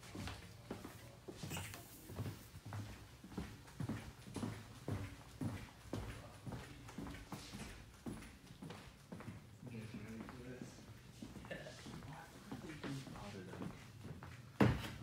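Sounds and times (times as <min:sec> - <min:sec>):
footsteps on wooden floor: 0:00.0 - 0:15.0.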